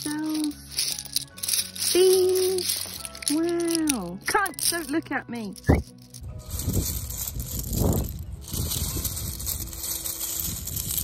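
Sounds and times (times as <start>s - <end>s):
wind blowing across microphone: 5.7s - 11.0s.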